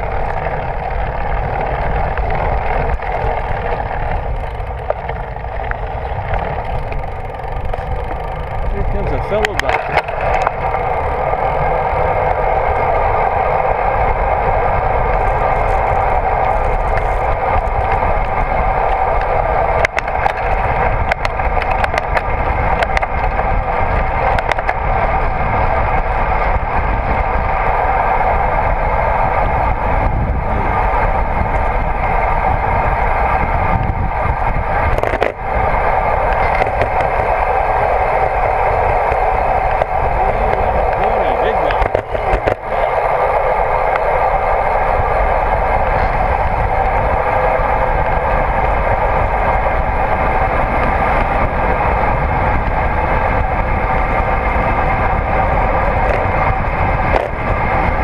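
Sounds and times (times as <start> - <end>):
bicycle tyres on asphalt: 0.0 - 58.0
wind rush: 0.0 - 58.0.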